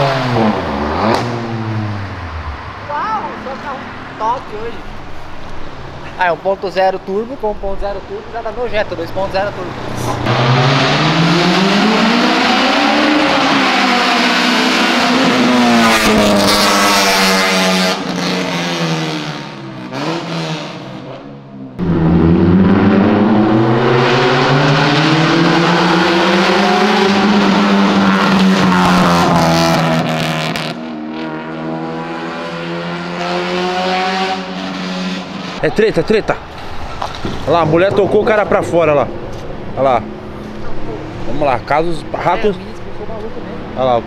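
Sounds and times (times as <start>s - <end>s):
car engines revving past: 0.0s - 44.0s.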